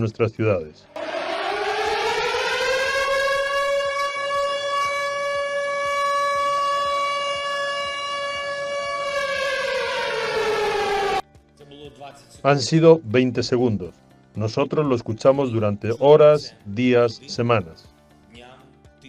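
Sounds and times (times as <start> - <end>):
air-raid siren wailing: 1.0 - 11.2.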